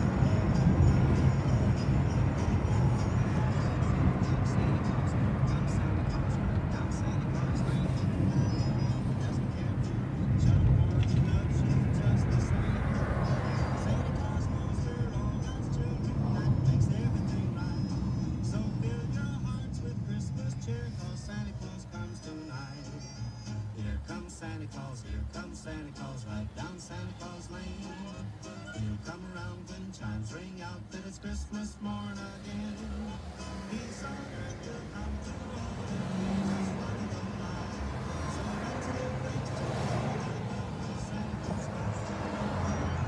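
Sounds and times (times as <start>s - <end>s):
car road and engine noise: 0.0s - 43.0s
music from car radio: 0.0s - 43.0s.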